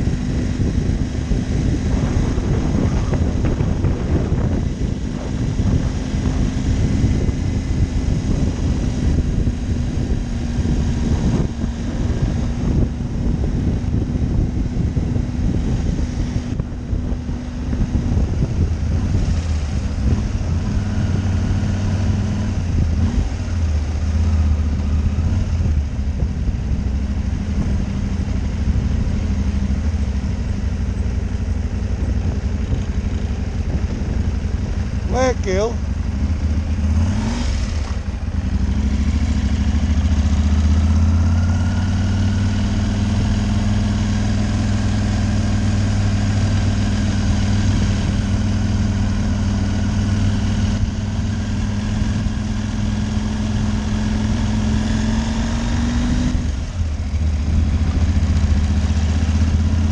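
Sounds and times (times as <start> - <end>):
motorcycle engine running: 0.0 - 59.9
wind noise on microphone: 0.0 - 59.9.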